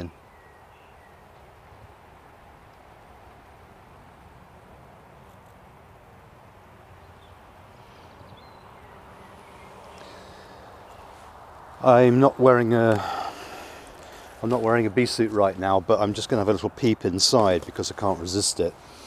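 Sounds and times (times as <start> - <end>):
honeybees humming: 7.0 - 15.2.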